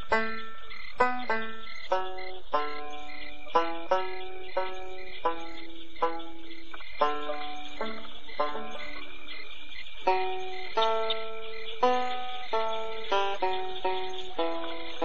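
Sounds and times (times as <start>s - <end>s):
banjo picking slow tune: 0.0s - 15.0s
crickets and frogs chirring: 0.0s - 15.0s.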